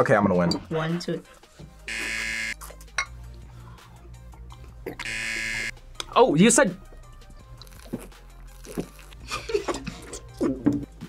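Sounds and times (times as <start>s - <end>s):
quiet background music: 0.0s - 11.0s
harsh electronic buzzer: 1.9s - 2.6s, 5.0s - 5.7s.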